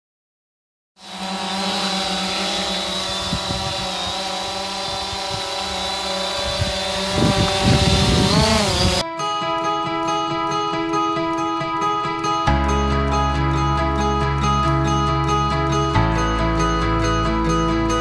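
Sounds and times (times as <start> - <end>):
drone rotors buzzing: 1.0 - 9.0
rotor wash buffeting microphone: 1.0 - 9.0
guitar music: 7.0 - 18.0.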